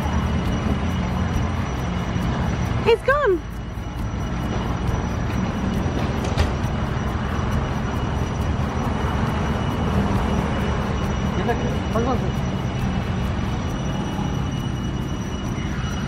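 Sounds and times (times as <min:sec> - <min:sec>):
car engine idling: 0:00.0 - 0:16.0.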